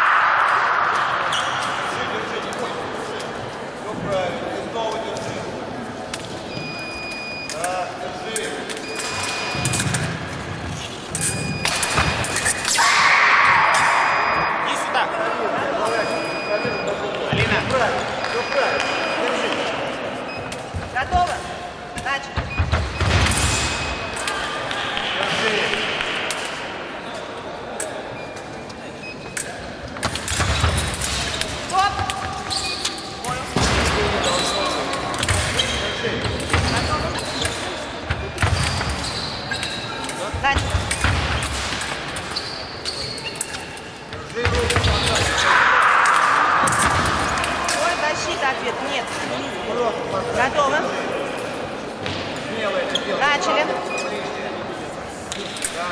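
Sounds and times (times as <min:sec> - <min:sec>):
indistinct voices: 0:42.8 - 0:52.2.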